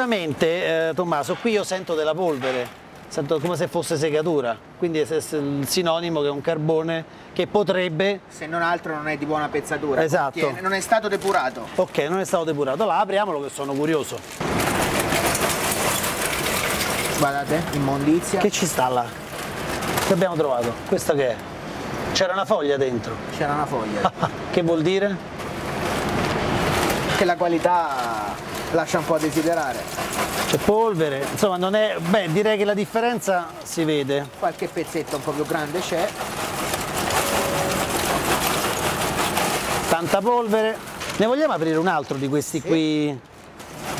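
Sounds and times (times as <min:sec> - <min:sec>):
charcoal pouring onto steel grill: 0:00.0 - 0:04.2, 0:10.4 - 0:21.4, 0:25.4 - 0:43.9
bag rustling: 0:10.4 - 0:21.4, 0:25.3 - 0:43.9.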